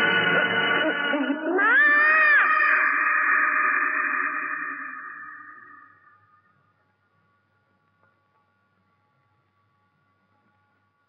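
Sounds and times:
woman screaming: 0:01.3 - 0:06.0.

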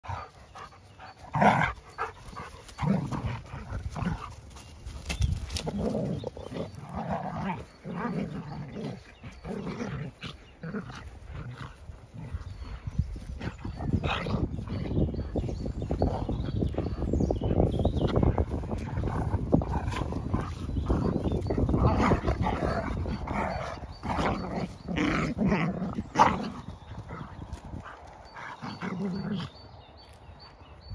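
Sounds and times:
dogs growling and grunting: 0:00.0 - 0:29.8
scuffling in grass: 0:00.1 - 0:30.9.

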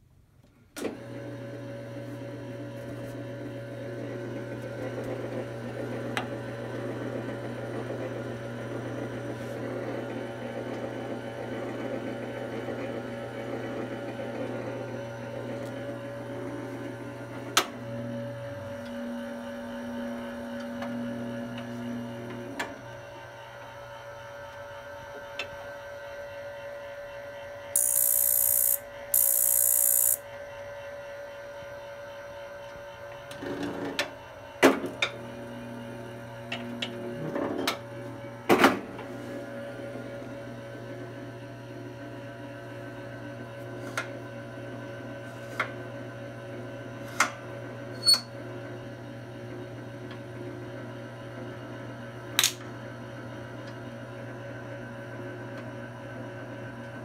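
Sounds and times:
coffee roaster motor hum: 0:00.9 - 0:57.0.

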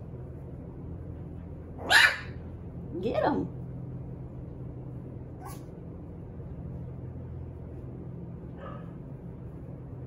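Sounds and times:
puppy barking: 0:01.8 - 0:02.4, 0:05.4 - 0:05.7, 0:08.6 - 0:09.0.

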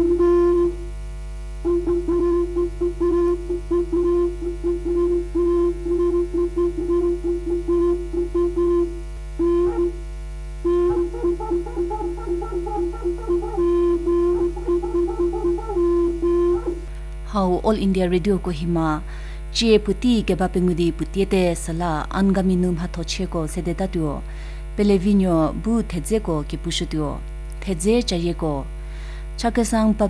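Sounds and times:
reedy wind instrument melody: 0:00.0 - 0:00.9, 0:01.6 - 0:10.0, 0:10.6 - 0:16.9
held drone note: 0:00.0 - 0:17.0
mains hum: 0:00.0 - 0:30.0.

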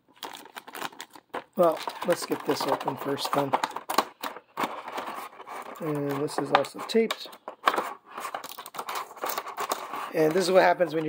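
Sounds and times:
plastic blister tray crinkling: 0:00.1 - 0:11.0.

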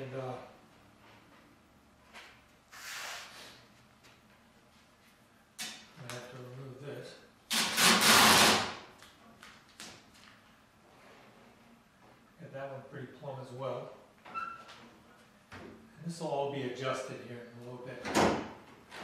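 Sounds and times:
adhesive tape ripping off roll: 0:07.5 - 0:09.1.

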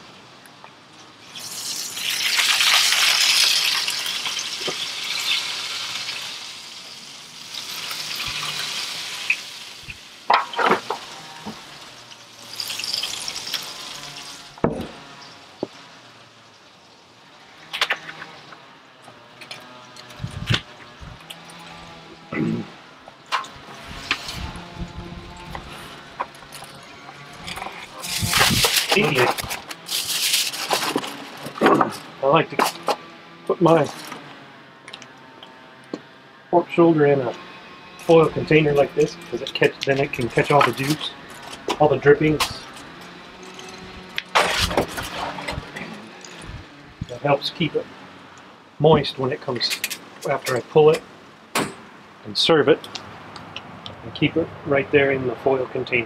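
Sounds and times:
aluminium foil crinkling: 0:27.4 - 0:31.5.

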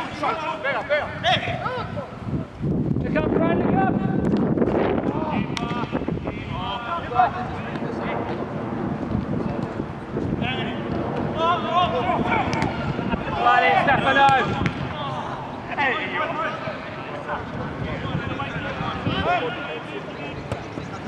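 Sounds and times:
low steady rumble: 0:04.7 - 0:14.0
voices shouting: 0:11.3 - 0:20.4.

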